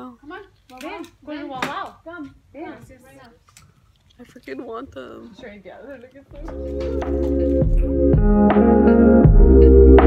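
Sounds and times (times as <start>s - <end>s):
woman speaking indistinctly: 4.1s - 6.5s.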